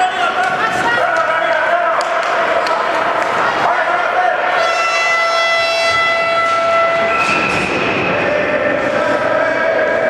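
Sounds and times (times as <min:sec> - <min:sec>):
game horn long note: 0:04.6 - 0:07.2.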